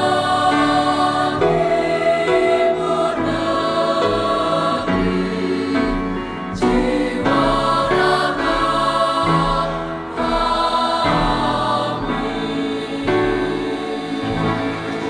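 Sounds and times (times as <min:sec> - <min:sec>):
choir singing in harmony: 0:00.0 - 0:15.0.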